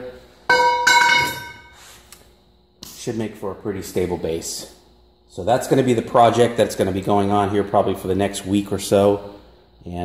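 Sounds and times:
steel tube ringing: 0:00.5 - 0:01.8.

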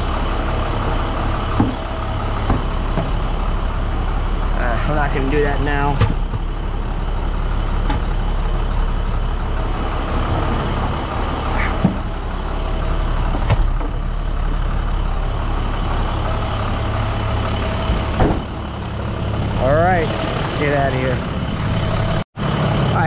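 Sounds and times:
diesel engine idling: 0:00.0 - 0:23.0
sharp knocks: 0:18.0 - 0:18.6.

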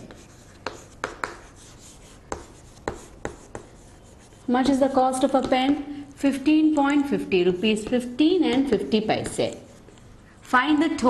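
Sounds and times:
chalk tapping and scratching: 0:00.0 - 0:05.8, 0:06.7 - 0:10.0.

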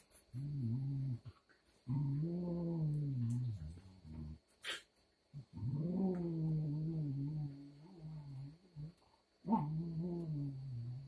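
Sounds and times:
dog play growling: 0:00.3 - 0:04.4, 0:05.4 - 0:11.0.

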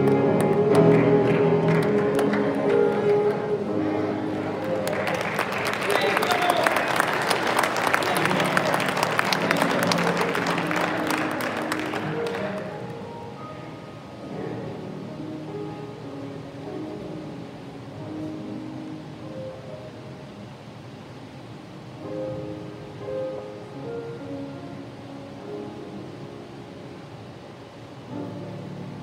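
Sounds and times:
congregation applauding: 0:00.0 - 0:13.4
soft keyboard music: 0:00.0 - 0:29.0.

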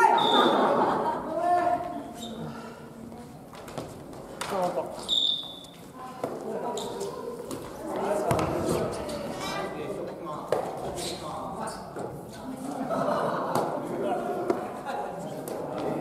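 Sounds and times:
shoe squeak: 0:02.0 - 0:02.4, 0:05.0 - 0:05.9, 0:06.7 - 0:07.1.

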